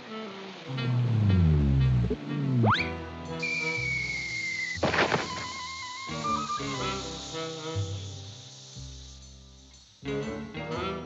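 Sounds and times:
background music: 0:00.0 - 0:11.0
falling whistle tone: 0:02.6 - 0:08.5
short noisy crash: 0:04.8 - 0:07.0.

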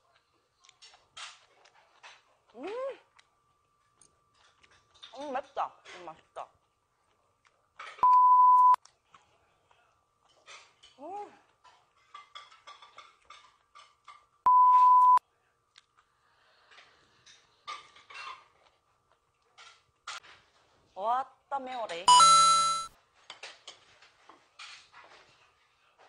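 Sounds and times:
censor bleep: 0:08.0 - 0:08.8, 0:14.5 - 0:15.2, 0:22.1 - 0:22.9.

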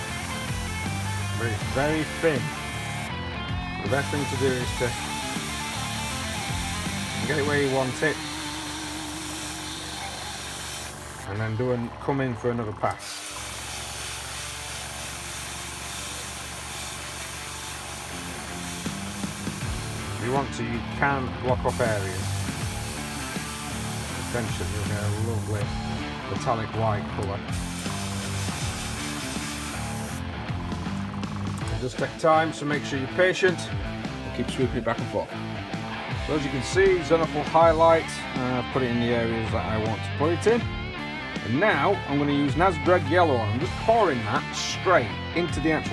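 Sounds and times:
airbrush hissing: 0:00.0 - 0:03.2, 0:03.8 - 0:11.3, 0:13.0 - 0:20.5, 0:21.6 - 0:25.8, 0:27.5 - 0:31.6
melodic background music: 0:00.0 - 0:13.1, 0:14.5 - 0:45.9.

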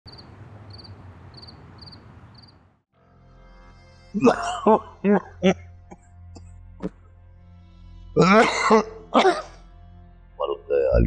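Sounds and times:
crickets chirping: 0:00.1 - 0:02.6.

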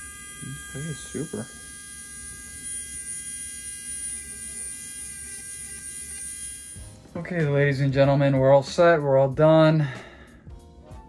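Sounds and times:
rotary nail drill whining: 0:00.0 - 0:07.0.

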